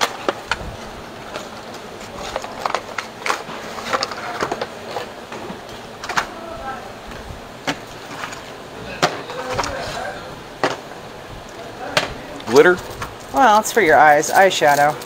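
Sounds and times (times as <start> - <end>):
faint voices: 0.0 - 15.0.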